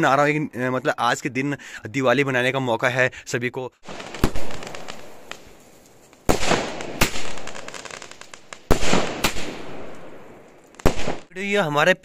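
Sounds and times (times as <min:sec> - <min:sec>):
fireworks bursting with crackling: 0:03.8 - 0:11.3.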